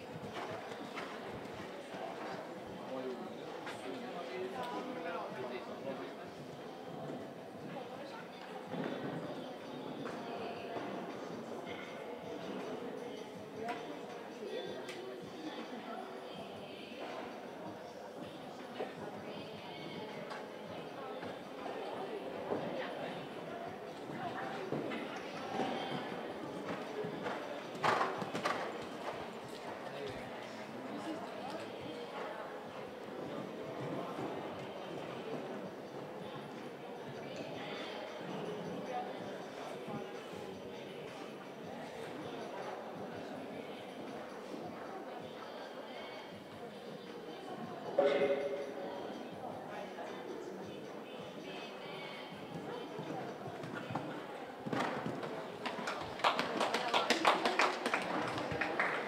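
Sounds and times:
murmur of voices: 0:00.0 - 0:59.0.

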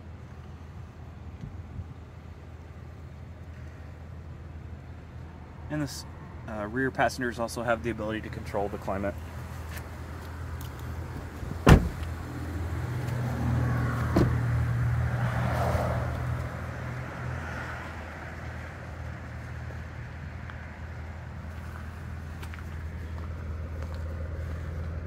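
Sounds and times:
car door thump: 0:11.5 - 0:12.1, 0:14.1 - 0:14.5.

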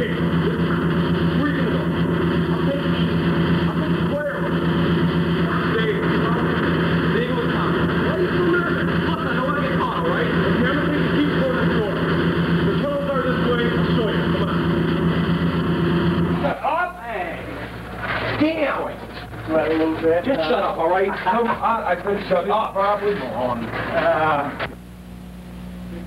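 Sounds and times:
young men talking: 0:00.0 - 0:15.4, 0:16.2 - 0:24.7
steady low hum: 0:00.0 - 0:26.0.

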